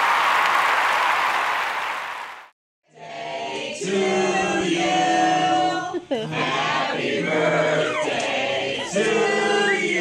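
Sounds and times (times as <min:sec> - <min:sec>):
men's chorus singing in harmony: 0:03.0 - 0:10.0.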